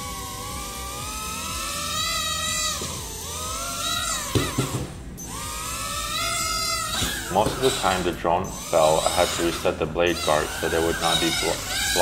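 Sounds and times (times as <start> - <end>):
drone propeller motors whining: 0.0 - 12.0.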